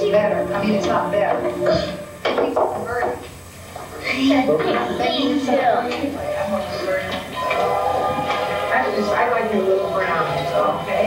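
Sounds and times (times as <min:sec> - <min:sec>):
film music: 0:00.0 - 0:02.5, 0:06.0 - 0:11.0
voice: 0:00.0 - 0:11.0.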